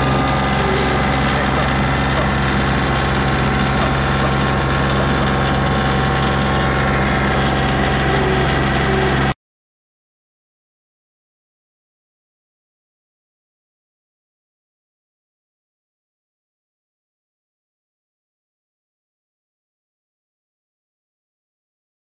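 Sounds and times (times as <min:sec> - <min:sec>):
tractor diesel engine running: 0:00.0 - 0:09.4.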